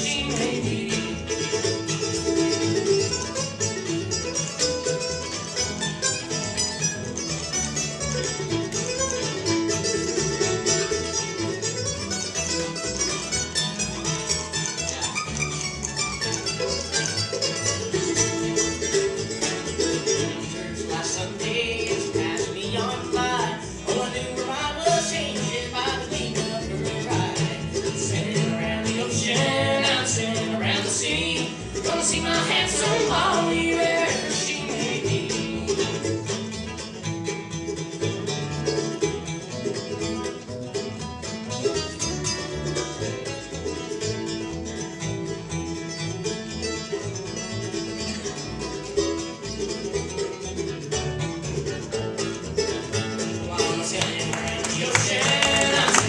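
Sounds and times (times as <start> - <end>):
acoustic guitar: 0.0 - 56.0
fiddle: 0.0 - 56.0
mandolin: 0.0 - 56.0
upright bass: 0.0 - 56.0.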